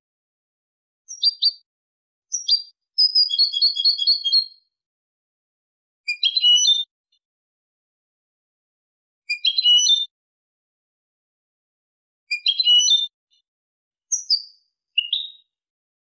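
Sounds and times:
goldfinch singing: 1.1s - 1.6s, 2.3s - 4.6s.

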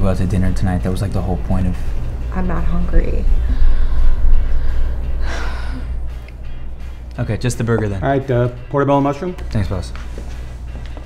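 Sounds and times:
low background music: 0.0s - 11.0s.

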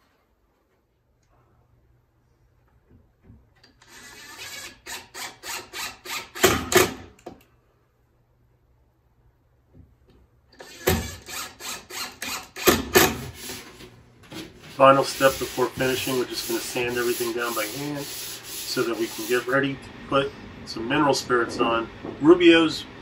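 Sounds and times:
cordless drill driving screws: 3.7s - 7.0s, 10.6s - 13.8s.

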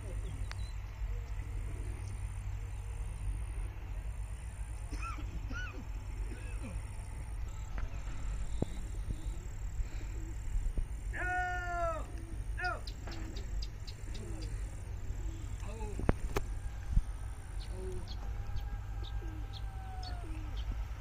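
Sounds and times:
distant shouting voices: 0.0s - 21.0s
steady low rumble: 0.0s - 21.0s.

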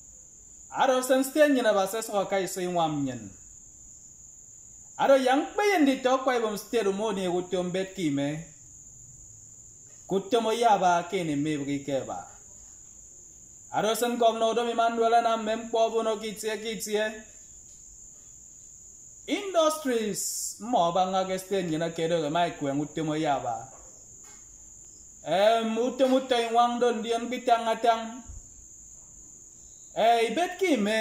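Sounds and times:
cricket trilling: 0.0s - 31.0s
man's voice: 0.7s - 3.3s, 5.0s - 8.5s, 10.1s - 12.4s, 13.7s - 17.2s, 19.3s - 23.7s, 25.2s - 28.3s, 30.0s - 31.0s
man speaking: 0.7s - 3.4s, 5.0s - 8.5s, 10.1s - 12.4s, 13.7s - 17.3s, 19.3s - 23.7s, 25.2s - 28.3s, 30.0s - 31.0s.

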